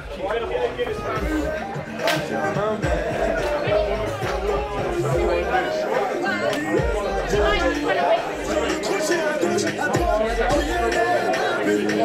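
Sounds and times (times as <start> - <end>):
men chattering: 0.0 - 12.0
music with deep bass line: 0.0 - 12.0.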